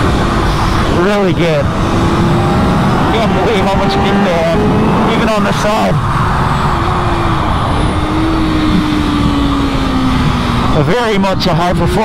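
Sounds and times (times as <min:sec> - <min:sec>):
motorcycle engine at speed: 0:00.0 - 0:12.0
wind rush on microphone: 0:00.0 - 0:12.0.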